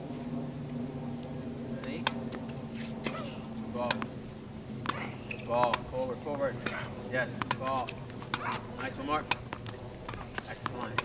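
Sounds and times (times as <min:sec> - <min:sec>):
steady low hum: 0:00.0 - 0:11.0
tennis balls knocking on hard court: 0:05.6 - 0:05.8, 0:06.6 - 0:07.7, 0:08.3 - 0:11.0
ball struck off racket: 0:07.4 - 0:07.6.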